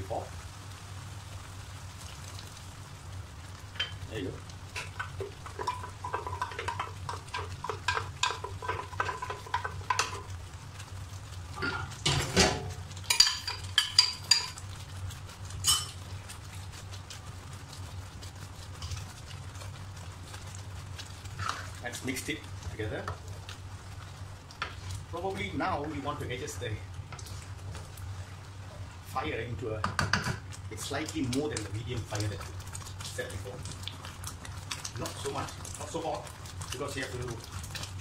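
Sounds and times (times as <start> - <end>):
paste sizzling in oil: 0.0 - 38.0
spatula knocking against wok: 4.8 - 10.2, 29.8 - 30.4.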